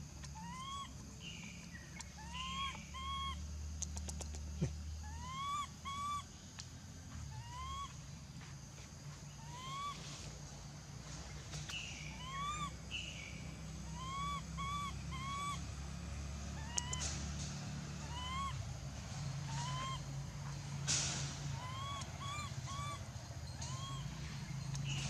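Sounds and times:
baby monkey coo calls: 0:00.2 - 0:00.9, 0:02.0 - 0:03.4, 0:04.0 - 0:06.3, 0:07.3 - 0:08.0, 0:09.4 - 0:10.1, 0:12.1 - 0:13.1, 0:13.8 - 0:15.7, 0:16.5 - 0:17.2, 0:17.9 - 0:18.7, 0:19.4 - 0:20.8, 0:21.4 - 0:25.0.

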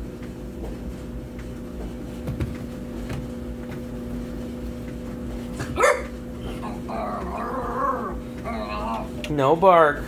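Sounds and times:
puppy barking: 0:05.6 - 0:09.2
puppy whining yap: 0:05.7 - 0:09.2.

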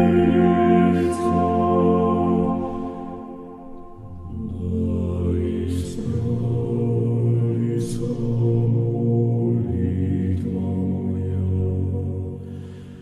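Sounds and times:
slow low chanted music: 0:00.0 - 0:13.0.

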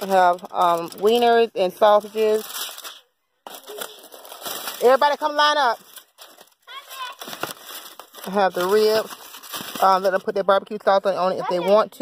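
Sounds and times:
aluminium foil crinkling: 0:00.0 - 0:10.8.

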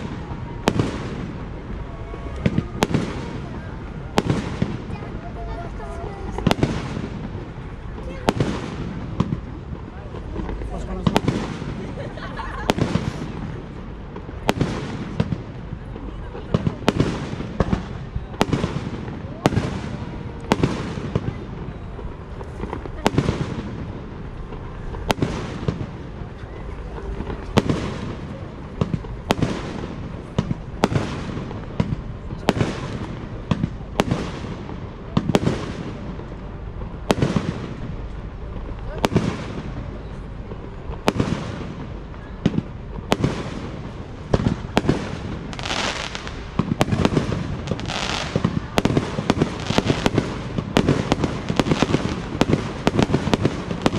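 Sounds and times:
firework crackling: 0:00.0 - 0:53.9
firework shells booming: 0:40.5 - 0:53.9.

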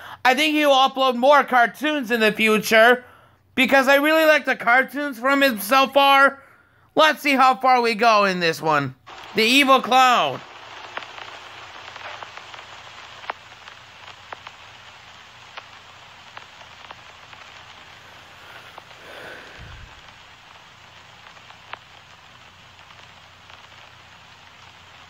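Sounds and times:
low steady hiss: 0:00.0 - 0:25.0
soft clicks and crackles: 0:09.1 - 0:09.5, 0:10.3 - 0:25.0.

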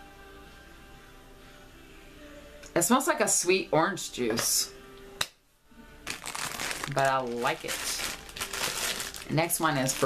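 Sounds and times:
plastic bag crinkling: 0:06.0 - 0:10.0.

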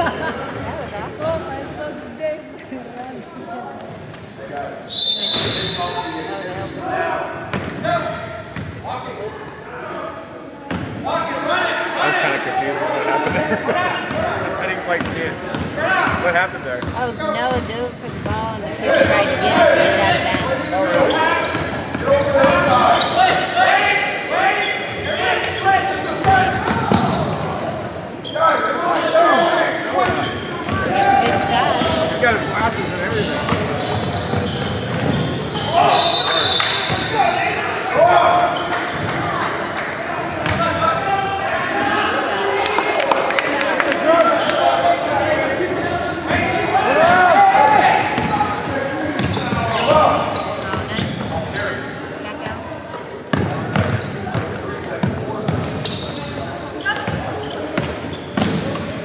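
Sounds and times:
people shouting in a hall: 0:40.6 - 0:48.9.

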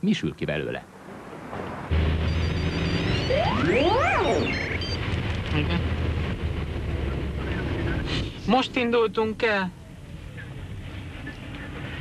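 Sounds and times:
low rumble: 0:01.8 - 0:08.9
fast rising electronic sweep: 0:01.9 - 0:06.2
high electronic bleeps: 0:02.2 - 0:05.8.

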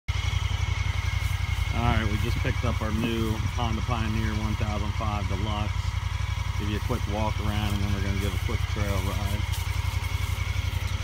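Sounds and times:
engine idling with low throb: 0:00.1 - 0:11.0.

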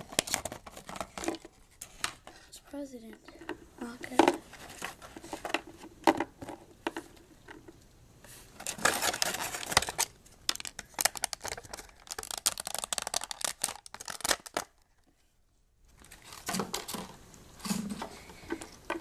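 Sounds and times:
plastic packaging crinkling: 0:00.0 - 0:02.4, 0:08.6 - 0:15.0, 0:16.0 - 0:18.0.

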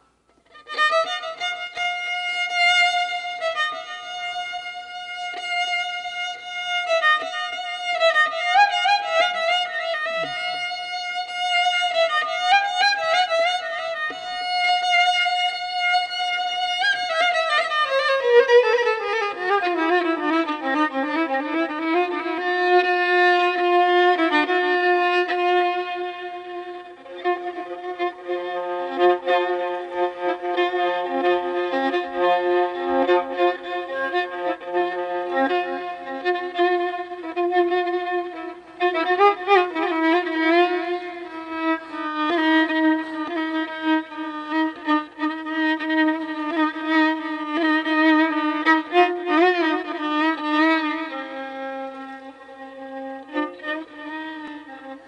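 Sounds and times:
violin playing classical music: 0:00.0 - 0:55.0.

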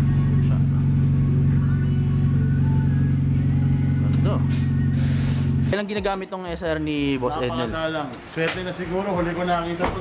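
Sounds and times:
car engine idling: 0:00.0 - 0:05.7.

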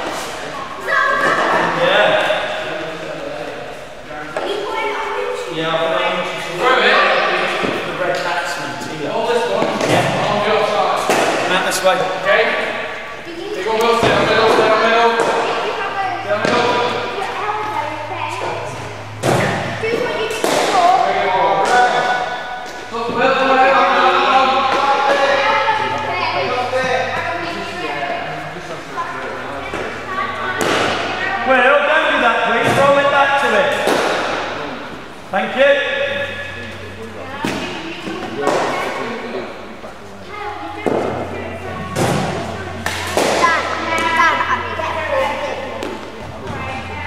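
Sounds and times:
children talking in echoing hall: 0:00.0 - 0:47.0.

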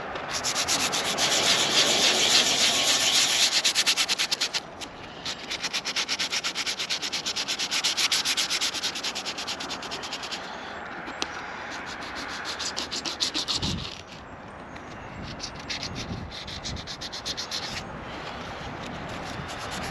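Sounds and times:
hand sanding scraping strokes: 0:00.2 - 0:10.5, 0:11.6 - 0:14.2, 0:15.2 - 0:19.9.

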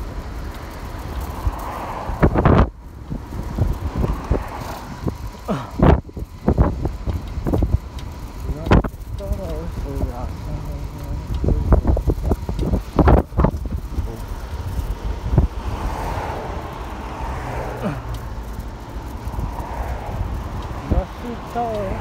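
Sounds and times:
bicycle knocking and rattling: 0:00.0 - 0:22.0
road vehicle passing: 0:00.0 - 0:22.0
wind and tyre rumble: 0:00.0 - 0:22.0.

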